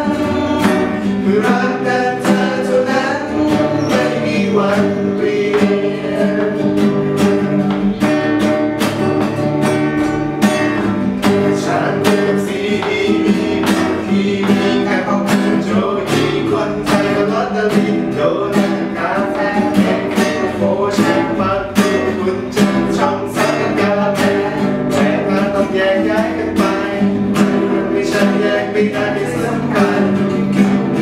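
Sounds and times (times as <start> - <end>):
person singing pop melody: 0.0 - 8.7, 9.9 - 31.0
acoustic guitars strumming: 0.0 - 31.0.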